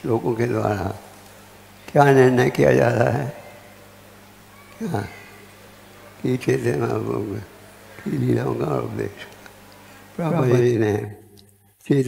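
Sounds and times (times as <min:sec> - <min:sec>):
man speaking: 0:00.0 - 0:01.1, 0:01.9 - 0:03.5, 0:06.2 - 0:09.3, 0:10.2 - 0:11.3
faint electrical hum: 0:00.0 - 0:12.0.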